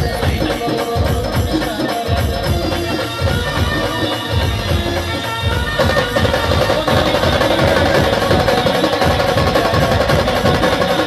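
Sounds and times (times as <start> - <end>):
fast driving drumming: 0.0 - 11.0
live band playing loudly: 0.0 - 11.0.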